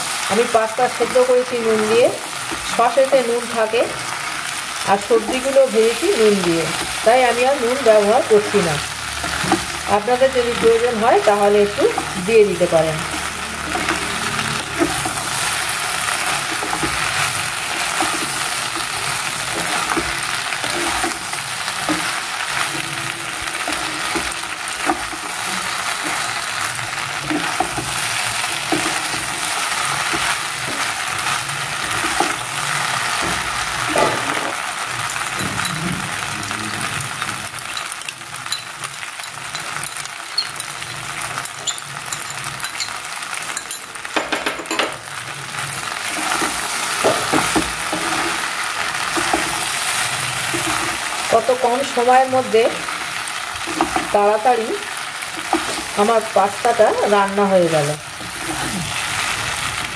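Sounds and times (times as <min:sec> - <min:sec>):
food sizzling in a frying pan: 0:00.0 - 0:59.9
spatula scraping a pan: 0:13.0 - 0:34.6.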